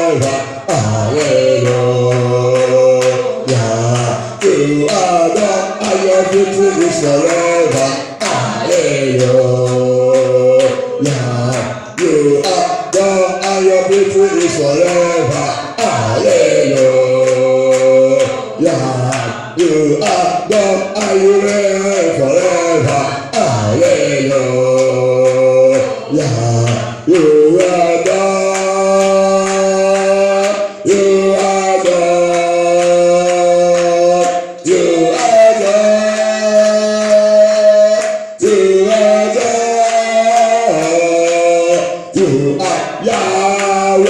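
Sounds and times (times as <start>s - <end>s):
steady beat: 0.0s - 35.8s
voices singing a worship song: 0.0s - 44.0s.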